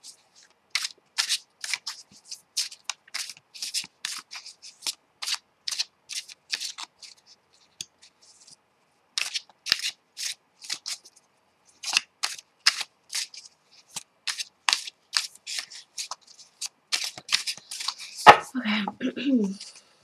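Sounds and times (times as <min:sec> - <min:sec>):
cards being shuffled: 0:00.1 - 0:08.6, 0:09.2 - 0:18.4.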